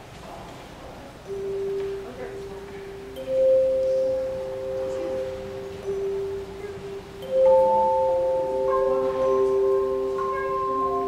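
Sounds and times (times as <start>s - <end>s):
handchime choir playing: 1.3s - 11.0s.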